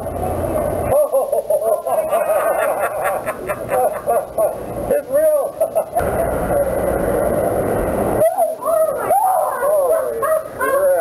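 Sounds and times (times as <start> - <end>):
man laughing hard: 1.0 - 4.6, 5.6 - 6.2.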